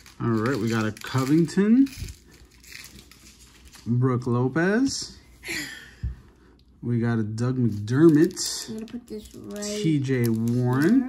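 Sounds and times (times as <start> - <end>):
cardboard cards rustling: 0.0 - 4.0, 7.6 - 11.0.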